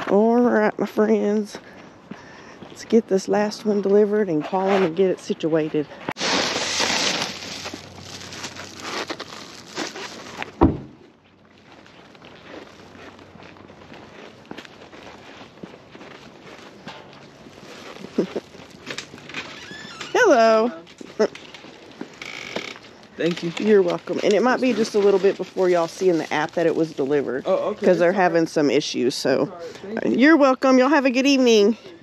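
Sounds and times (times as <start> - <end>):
footsteps: 1.0 - 28.4
bag rustling: 5.9 - 28.1
road and car noise: 7.0 - 19.6
loud thunk: 10.6 - 11.0.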